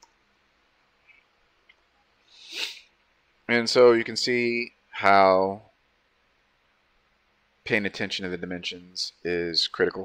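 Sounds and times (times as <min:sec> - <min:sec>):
person breathing hissily: 0:02.2 - 0:02.9.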